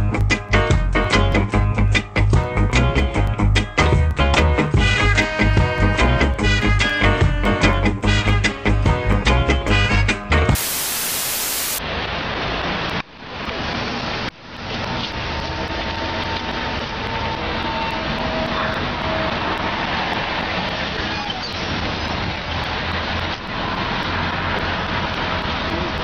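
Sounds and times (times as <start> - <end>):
faint high whine: 10.6 - 11.8
tv static hiss: 10.6 - 11.8
traffic rumble: 10.6 - 26.0.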